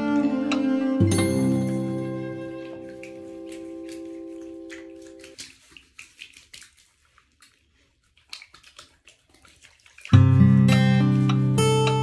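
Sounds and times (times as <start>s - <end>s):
background music: 0.0s - 5.2s, 10.2s - 12.0s
water splashes and drips in bathtub: 1.1s - 12.0s.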